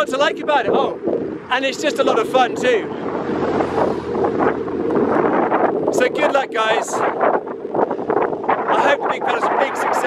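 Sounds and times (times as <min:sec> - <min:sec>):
wind buffeting microphone: 0:00.0 - 0:10.0.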